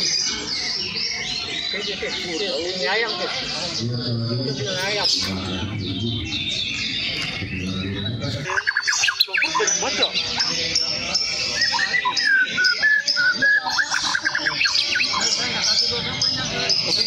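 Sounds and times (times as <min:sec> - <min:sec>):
songbird singing: 0:00.0 - 0:17.0.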